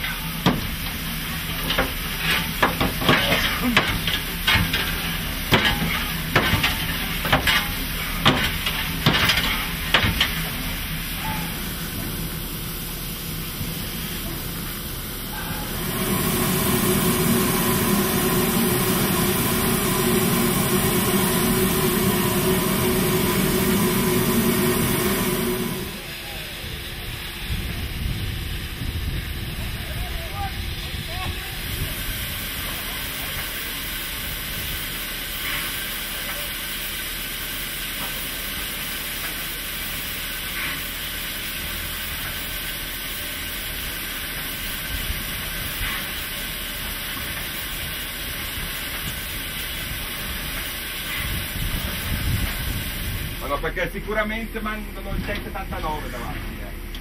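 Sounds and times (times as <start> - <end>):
steam hissing: 0.0 - 56.8
steam locomotive running noise: 0.0 - 57.0.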